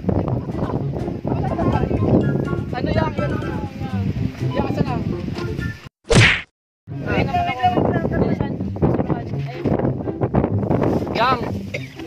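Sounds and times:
voices: 0.2s - 5.2s
whoosh and whack sound effect: 6.1s - 6.5s.

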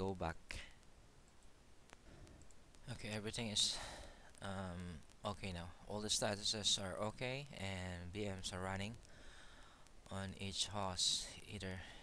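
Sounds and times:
computer mouse clicks: 0.8s - 2.9s.

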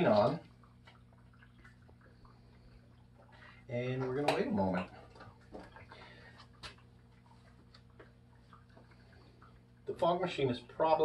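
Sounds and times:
faint electrical hum: 0.0s - 11.0s
water dripping: 0.0s - 11.0s.

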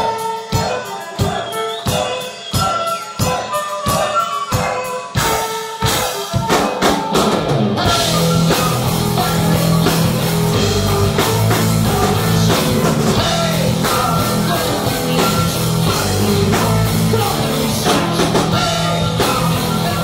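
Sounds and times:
live folk metal band: 0.0s - 20.0s.

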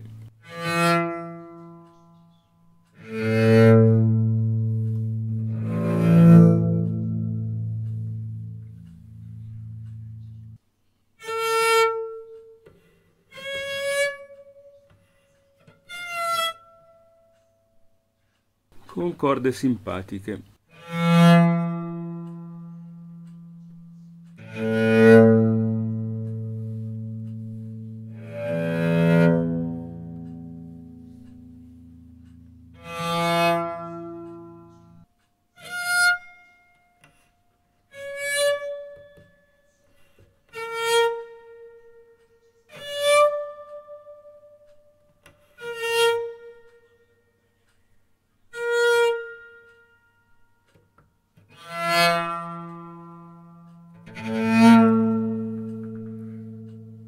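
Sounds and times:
cello single notes ringing: 0.0s - 10.6s, 11.2s - 18.0s, 20.6s - 47.7s, 48.4s - 57.0s.

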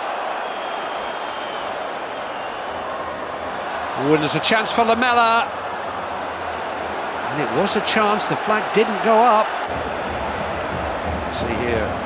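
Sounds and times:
stadium crowd hum: 0.0s - 12.0s
faint high whistle: 0.4s - 2.7s.

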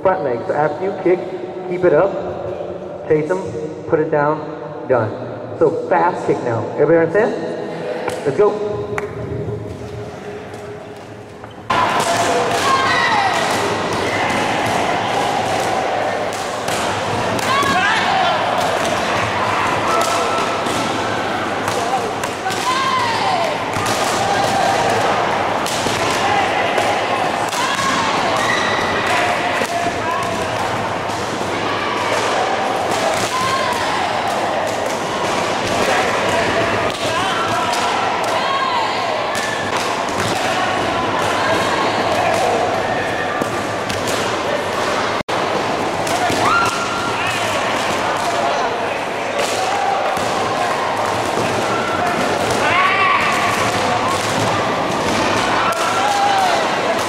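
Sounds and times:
crowd of voices and shouts: 7.5s - 57.0s.

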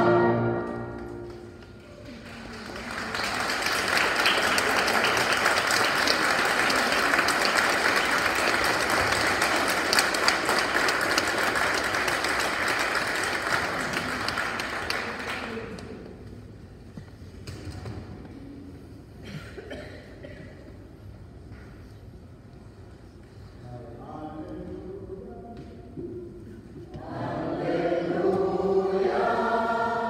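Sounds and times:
audience applauding: 1.2s - 15.9s.

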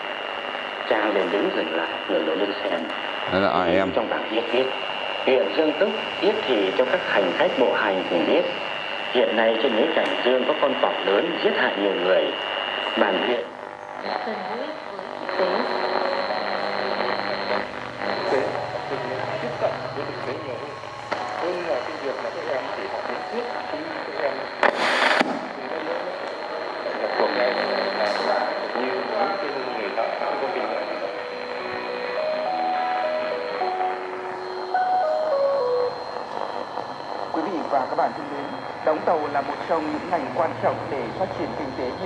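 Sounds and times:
radio static hiss: 0.0s - 42.0s
faint voice on radio: 0.8s - 32.4s, 36.2s - 42.0s.

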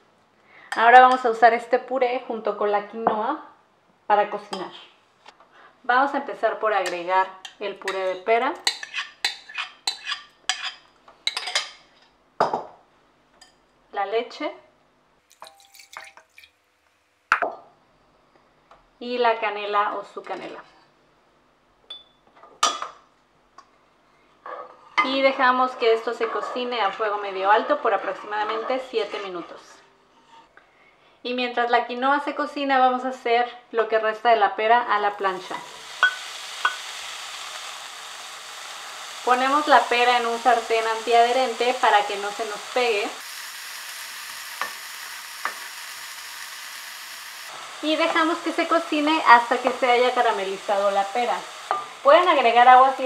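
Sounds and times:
pear sizzling in a frying pan: 7.9s - 10.8s, 34.9s - 53.0s
spoon clinking ceramic bowl: 21.9s - 22.2s, 36.0s - 36.8s.

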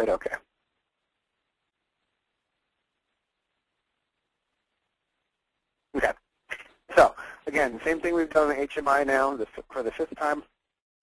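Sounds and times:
man speaking: 0.0s - 0.5s, 6.0s - 10.5s.

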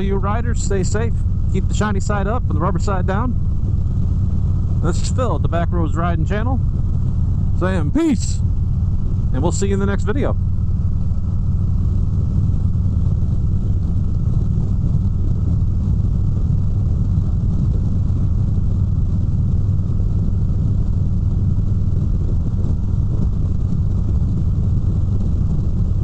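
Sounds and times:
motorcycle engine rumbling: 0.0s - 12.2s
wind and road noise: 0.0s - 26.0s.

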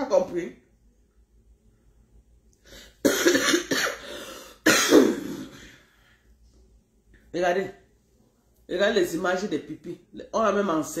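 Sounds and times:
woman coughing: 3.0s - 5.8s.

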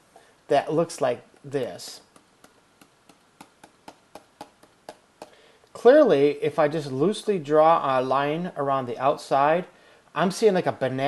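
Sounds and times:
stylus tapping on screen: 1.6s - 5.4s.

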